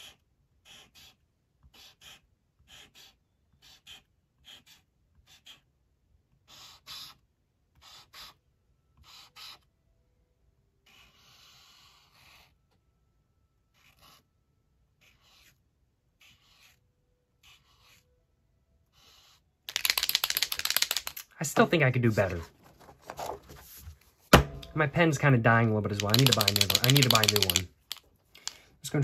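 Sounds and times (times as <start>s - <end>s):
marker scratching on paper: 0.0s - 8.4s, 9.0s - 9.7s, 10.8s - 12.6s, 13.7s - 14.3s, 14.9s - 18.2s, 18.8s - 21.2s, 25.9s - 27.7s
paper rustling: 22.1s - 24.2s, 25.9s - 28.6s.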